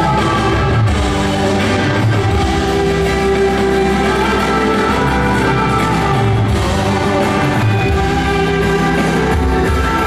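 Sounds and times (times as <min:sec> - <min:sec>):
rock band playing held chord: 0:00.0 - 0:10.0.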